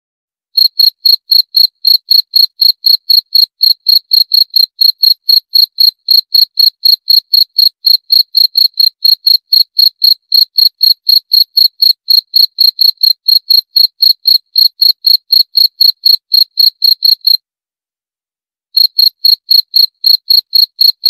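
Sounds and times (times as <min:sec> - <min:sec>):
cricket chirping: 0:00.6 - 0:17.4, 0:18.8 - 0:21.0.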